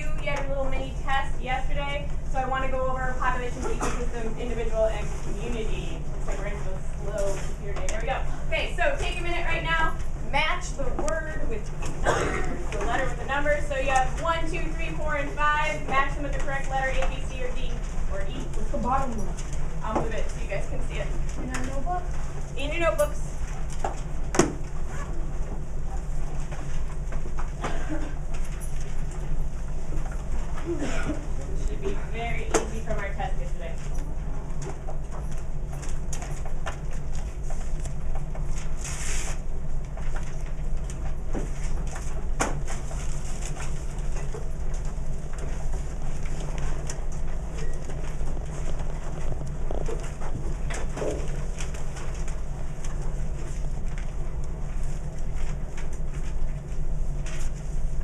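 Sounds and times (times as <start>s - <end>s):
classroom low hum: 0.0s - 58.0s
faint clicks and rustles: 12.7s - 58.0s.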